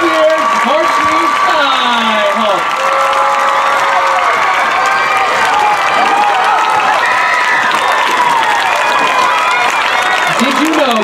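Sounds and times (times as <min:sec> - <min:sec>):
crowd cheering and shouting: 0:00.0 - 0:11.0
crowd clapping: 0:00.0 - 0:11.0.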